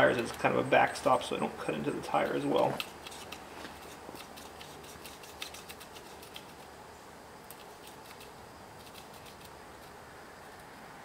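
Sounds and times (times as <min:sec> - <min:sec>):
faint steady hiss: 0:00.0 - 0:11.0
razor blade slicing rubber: 0:02.7 - 0:06.7, 0:07.5 - 0:09.9.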